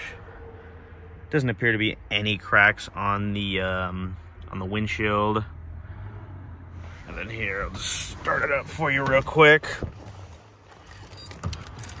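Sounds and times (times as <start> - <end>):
keys jangling: 10.8 - 12.0
metallic clicks of ignition key: 11.0 - 12.0.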